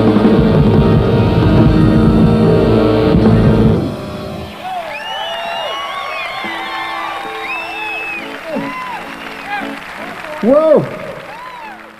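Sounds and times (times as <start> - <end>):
audience cheering: 0.0 - 11.9
live rock band playing: 0.0 - 11.9
loud whistles: 4.2 - 9.8.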